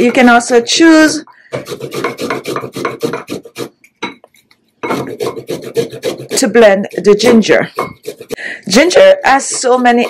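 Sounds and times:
ginger grated on metal grater: 1.6s - 3.7s, 4.8s - 8.4s, 9.3s - 10.0s.

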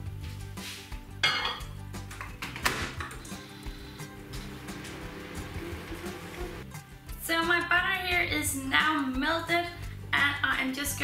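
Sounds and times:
soft background music: 0.0s - 11.0s
ceramic mug knocking and clinking: 1.2s - 1.8s.

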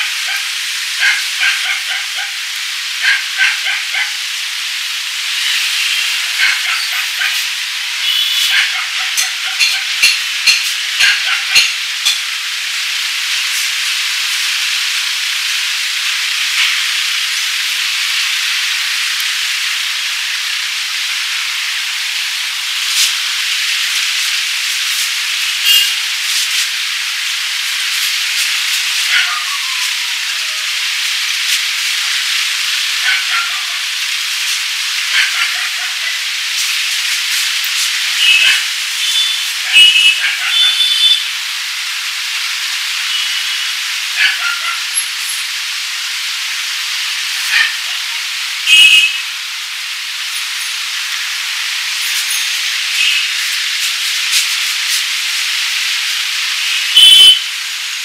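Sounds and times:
short high squeaks: 25.6s - 26.0s.

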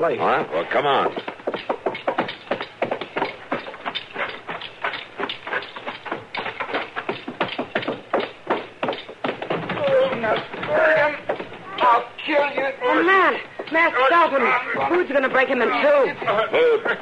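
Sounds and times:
rapid knocks and thuds: 0.0s - 17.0s
voices: 9.6s - 17.0s.

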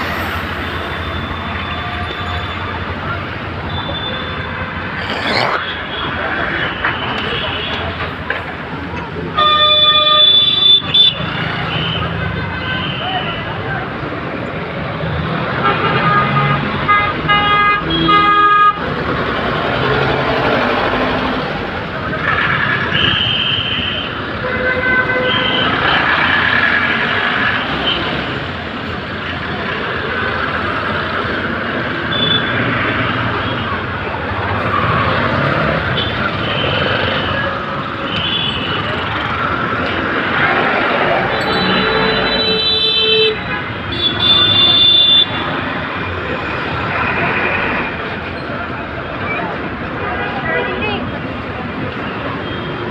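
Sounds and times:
busy road traffic: 0.0s - 52.9s
vehicle horns: 9.4s - 13.5s, 22.6s - 26.1s, 34.8s - 39.2s, 41.3s - 45.6s.

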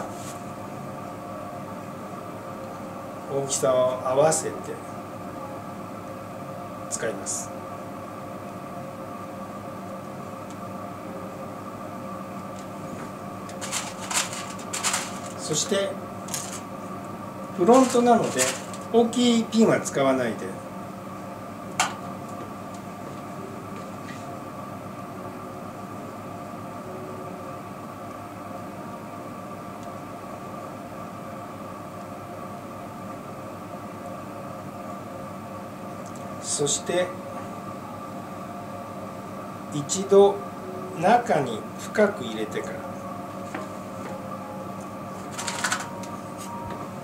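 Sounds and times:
steady hum with held tones: 0.0s - 47.0s.

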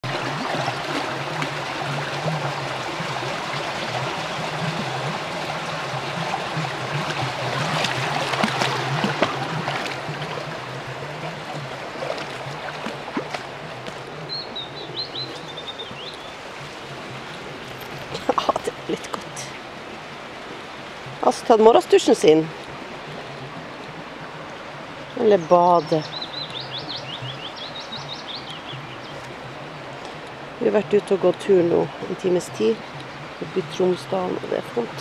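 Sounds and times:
stream running over stones: 0.0s - 35.0s
dog splashing in water: 6.9s - 14.1s.

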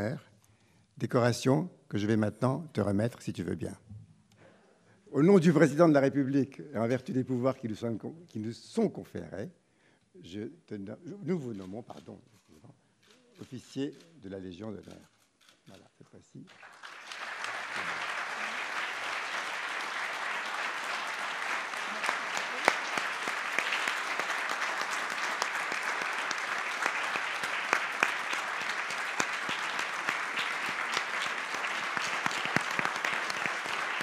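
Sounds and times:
audience applauding: 16.5s - 34.0s.

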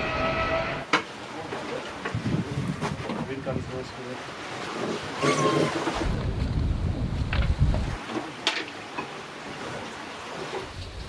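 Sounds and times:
wind buffeting microphone: 2.1s - 3.7s, 5.9s - 8.0s.

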